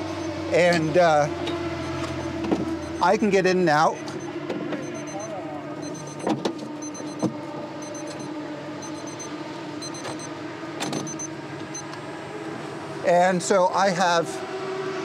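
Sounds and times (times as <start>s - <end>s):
steady mechanical hum: 0.0s - 15.0s.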